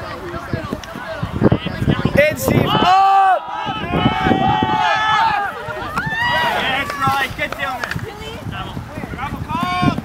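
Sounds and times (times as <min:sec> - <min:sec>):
men shouting wordless calls: 0:02.2 - 0:07.8.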